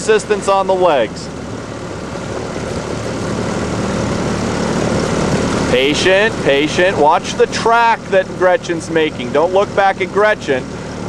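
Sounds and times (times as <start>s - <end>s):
outboard motor droning: 0.0s - 11.0s
wind and water hiss: 0.0s - 11.0s.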